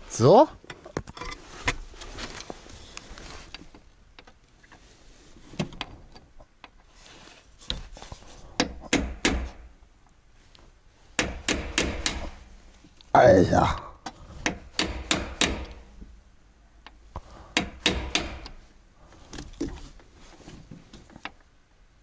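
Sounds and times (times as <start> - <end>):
hammer striking a metal punch: 11.2 - 12.2, 14.5 - 15.8, 17.6 - 18.5.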